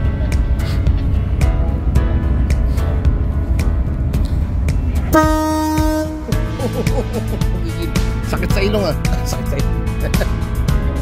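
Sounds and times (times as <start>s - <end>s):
background music with a beat: 0.0s - 11.0s
ship's horn blast: 5.1s - 6.5s.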